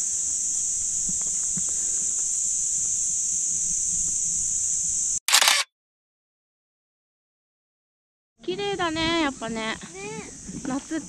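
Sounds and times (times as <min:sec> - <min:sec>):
high-pitched insect drone: 0:00.0 - 0:05.6
camera shutter click: 0:05.3 - 0:05.7.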